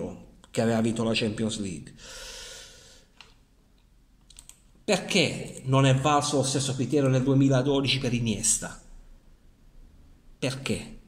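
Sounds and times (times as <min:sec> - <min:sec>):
man speaking: 0:00.0 - 0:02.0, 0:04.8 - 0:08.9, 0:10.4 - 0:11.0.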